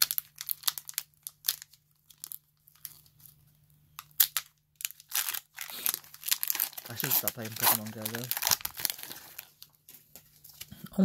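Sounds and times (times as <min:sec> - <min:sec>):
foil wrapper crinkling: 0:00.0 - 0:10.7.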